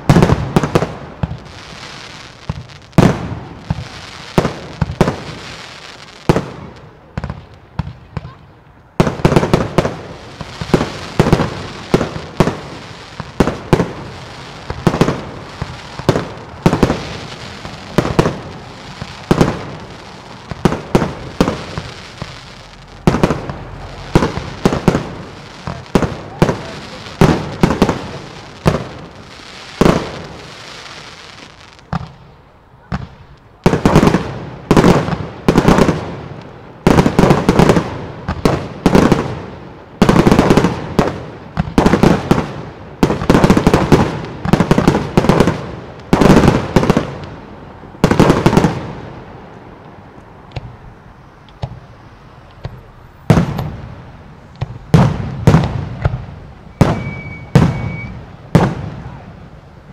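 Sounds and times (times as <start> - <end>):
fireworks launching and bursting: 0.0 - 49.6, 50.5 - 59.9.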